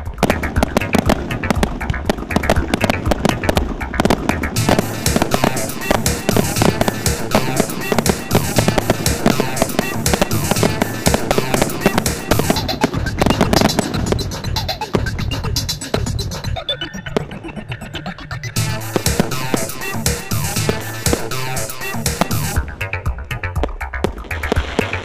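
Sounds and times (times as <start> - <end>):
fireworks bursting: 0.0 - 17.4, 18.6 - 25.0
music with a strong beat: 0.0 - 25.0.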